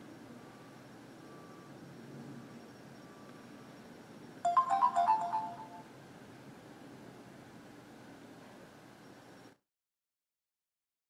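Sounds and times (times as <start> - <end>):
phone startup jingle: 4.5 - 5.8.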